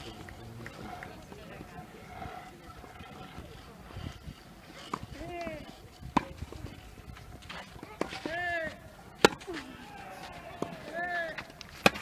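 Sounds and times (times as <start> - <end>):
tennis balls struck by rackets: 4.8 - 12.0.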